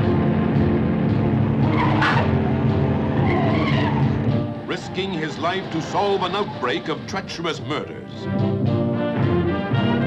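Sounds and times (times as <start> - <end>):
car engines running hard: 0.0 - 8.5
tyres squealing: 1.6 - 7.4.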